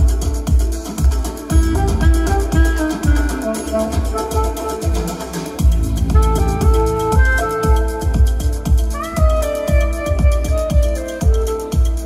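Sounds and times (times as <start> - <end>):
electronic dance track: 0.0 - 12.0
steady kick drum: 0.0 - 12.0
saxophone playing: 1.5 - 12.0.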